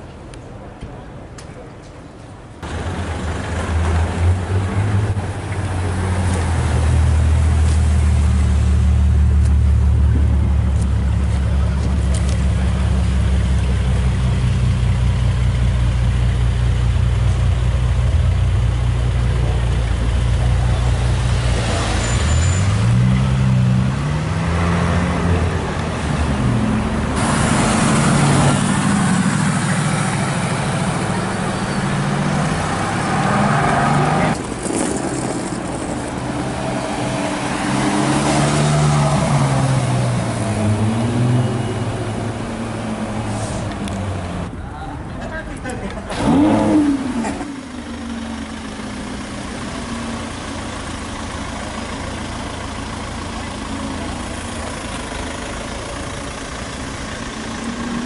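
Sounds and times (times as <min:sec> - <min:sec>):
car engine idling: 0:41.5 - 0:58.0
car accelerating through gears: 0:46.1 - 0:47.6.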